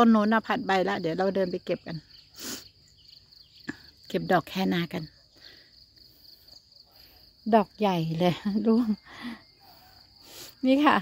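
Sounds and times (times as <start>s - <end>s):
woman speaking: 0.0s - 2.1s, 3.7s - 5.2s, 7.4s - 9.4s, 10.5s - 11.0s
high-pitched insect trill: 0.0s - 11.0s.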